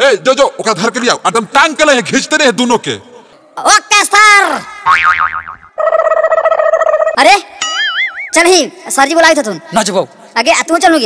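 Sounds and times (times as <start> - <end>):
cartoon boing with wobbling pitch: 4.9 - 8.3.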